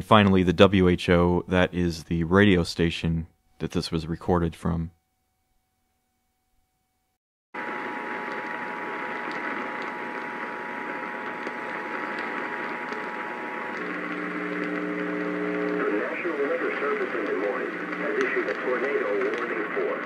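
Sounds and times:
low buzzing tone: 0:04.9 - 0:16.0
radio hiss: 0:07.6 - 0:20.0
person speaking over radio: 0:15.6 - 0:20.0.

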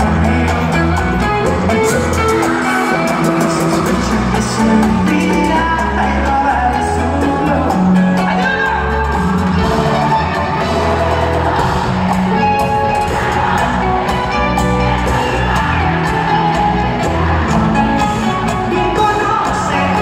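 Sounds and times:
live band music: 0:00.0 - 0:20.0.

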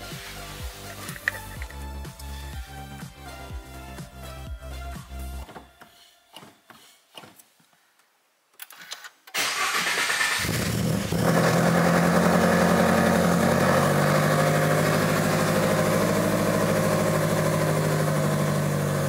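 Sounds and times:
engine starter cranking: 0:08.6 - 0:19.0
car engine idling: 0:10.4 - 0:19.0.

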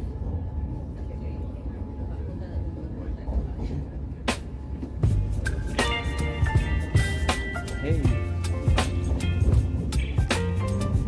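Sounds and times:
tram rumbling on track: 0:00.0 - 0:11.0.

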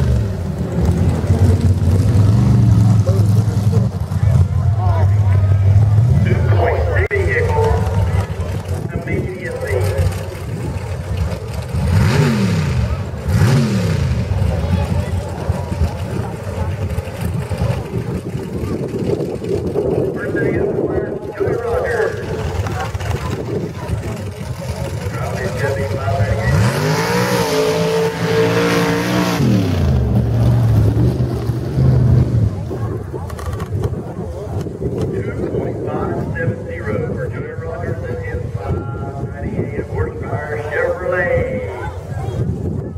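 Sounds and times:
truck engine idling and revving: 0:00.0 - 0:42.9.

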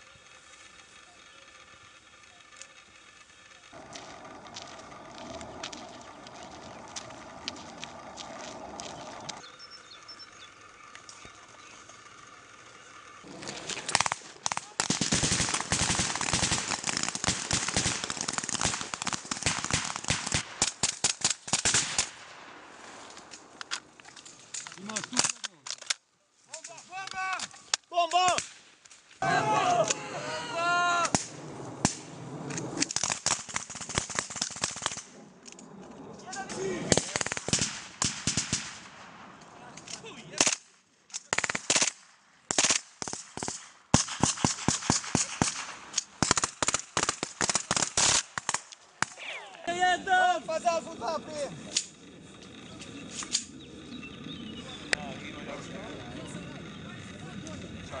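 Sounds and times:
steady background noise: 0:00.0 - 0:58.0
rifle shots: 0:13.3 - 0:23.6, 0:36.6 - 0:49.2
rapid gunfire volley: 0:13.8 - 0:22.3, 0:33.0 - 0:35.1, 0:36.6 - 0:39.3, 0:41.3 - 0:49.2
man shouting: 0:26.9 - 0:28.4, 0:29.2 - 0:31.2, 0:49.2 - 0:50.9
overlapping voices: 0:29.2 - 0:31.3.

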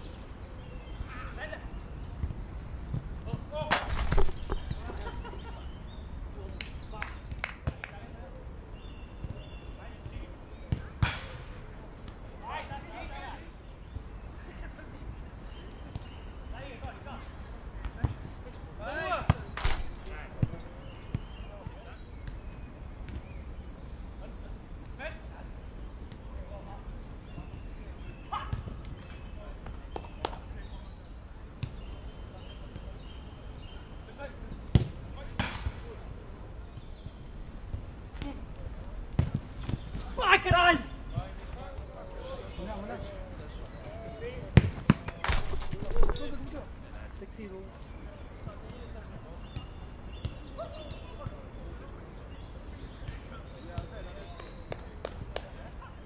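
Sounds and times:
football kick thuds: 0:34.7 - 0:35.8, 0:39.2 - 0:40.0, 0:44.5 - 0:46.2
distant players shouting: 0:40.0 - 0:46.9.

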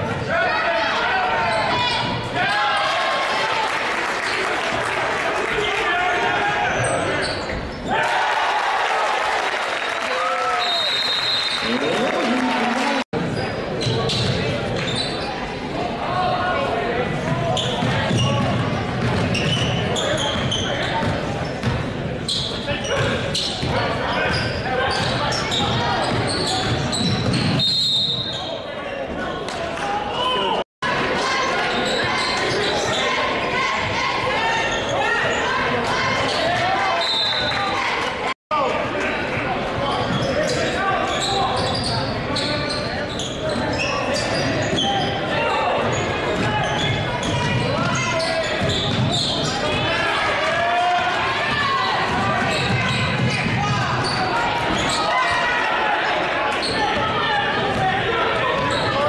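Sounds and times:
crowd chatter: 0:00.0 - 0:08.3, 0:09.9 - 0:59.0.

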